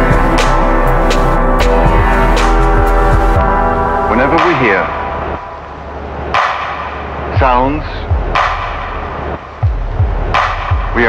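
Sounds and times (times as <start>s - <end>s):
sharp drum hit: 0.0s - 5.6s
electronic music beat: 0.0s - 11.0s
deep kick drum hits: 1.5s - 5.1s, 7.4s - 9.0s.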